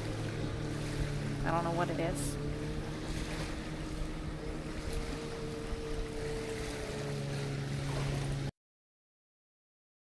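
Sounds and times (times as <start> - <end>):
low hum of held tones: 0.0 - 8.5
waves washing on beach: 0.0 - 8.5
wind buffeting microphone: 0.0 - 8.5.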